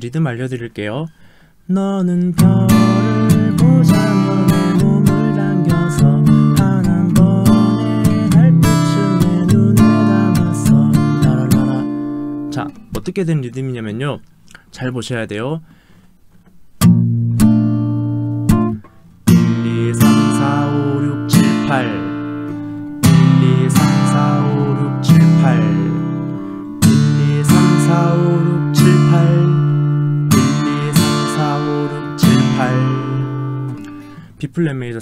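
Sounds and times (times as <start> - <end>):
acoustic guitar strumming: 2.1 - 13.1, 15.7 - 34.4.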